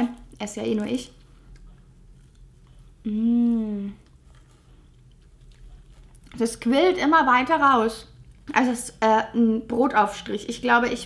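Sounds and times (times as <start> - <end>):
low steady hum: 0.0 - 11.0
mouth eating sounds: 1.5 - 6.5.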